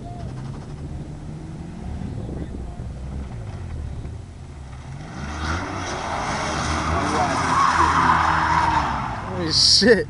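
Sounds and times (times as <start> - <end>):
car engine accelerating hard: 0.0 - 9.4
tyres squealing: 6.7 - 9.3.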